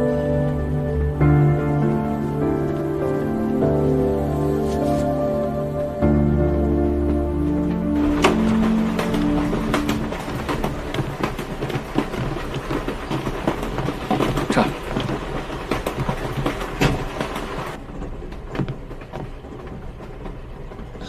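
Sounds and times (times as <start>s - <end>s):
rattles and knocks: 0.0s - 21.0s
train carriage rumble: 0.0s - 21.0s.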